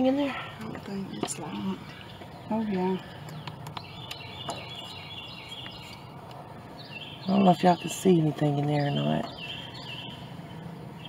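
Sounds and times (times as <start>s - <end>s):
songbird singing: 0.0s - 11.0s.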